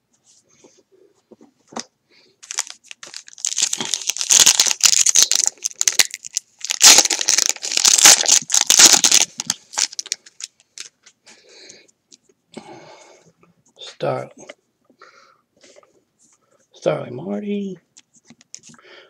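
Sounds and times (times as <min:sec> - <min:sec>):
foil pack crinkling and tearing: 0:02.4 - 0:10.9.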